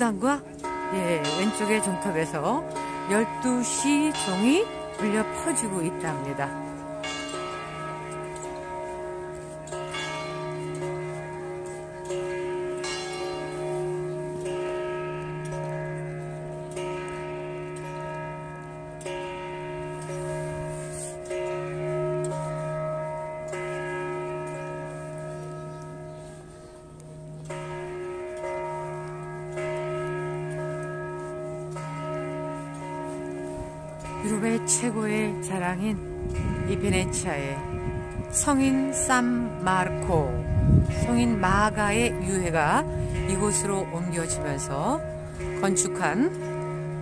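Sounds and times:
church bells ringing: 0.0 - 47.0.

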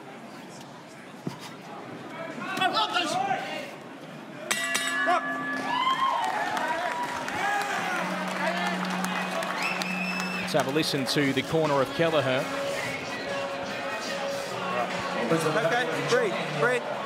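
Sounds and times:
boxing ring bell ringing: 4.5 - 6.2
arena crowd shouting: 5.1 - 10.7.

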